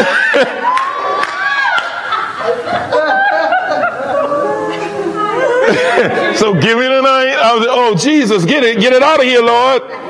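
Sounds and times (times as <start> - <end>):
group of listeners laughing: 0.0 - 0.8, 1.4 - 6.4.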